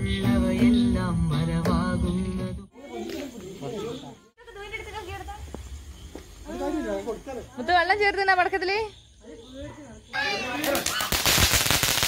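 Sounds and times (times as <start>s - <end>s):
singing with guitar: 0.0s - 2.7s.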